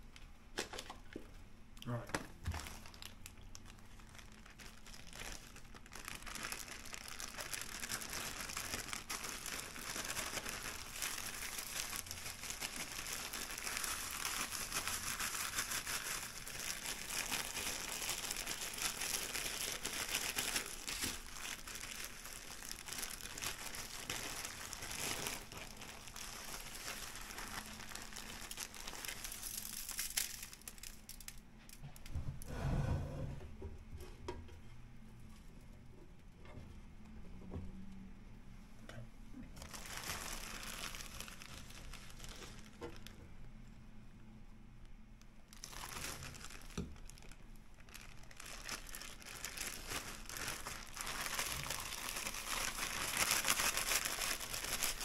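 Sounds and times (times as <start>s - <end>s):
plastic bag crinkling: 0.5s - 32.1s, 39.6s - 43.2s, 45.5s - 55.0s.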